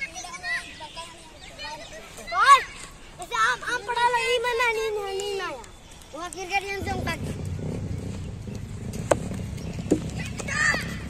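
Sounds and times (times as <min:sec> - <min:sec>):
low rumble: 0:06.6 - 0:11.0.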